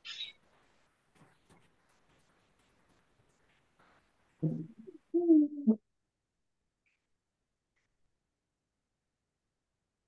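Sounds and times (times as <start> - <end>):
person's short voiced syllable: 4.4 - 5.8.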